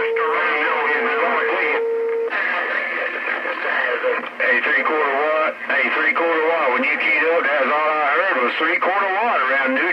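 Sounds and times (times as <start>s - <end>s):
garbled radio signals: 0.0s - 9.9s.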